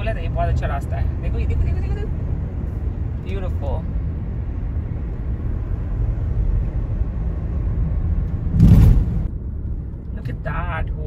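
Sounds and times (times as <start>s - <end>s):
car road noise rumble: 0.0s - 11.0s
loud rush of noise: 8.3s - 9.3s.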